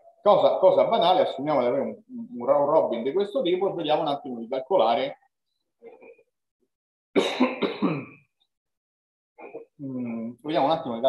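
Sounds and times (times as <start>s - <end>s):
man clearing his throat: 7.2s - 8.3s.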